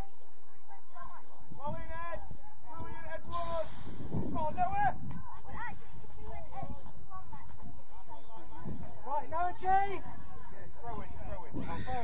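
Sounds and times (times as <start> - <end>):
wind rumble on microphone: 2.8 - 9.1, 11.0 - 12.0.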